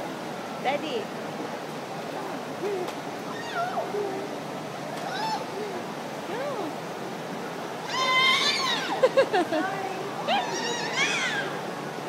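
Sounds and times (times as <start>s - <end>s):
young child squealing: 3.3s - 4.0s, 5.0s - 5.5s, 7.8s - 9.0s, 10.3s - 11.6s.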